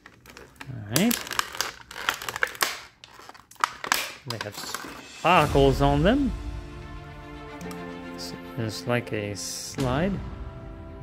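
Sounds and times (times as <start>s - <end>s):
plastic packaging crinkling: 0.0s - 5.1s.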